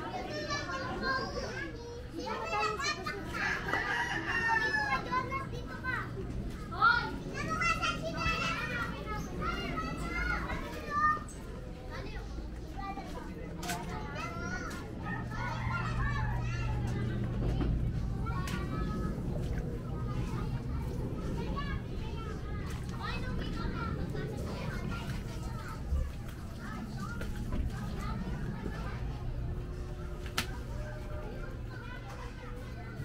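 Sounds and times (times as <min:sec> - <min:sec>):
children shouting and chattering: 0:00.0 - 0:33.0.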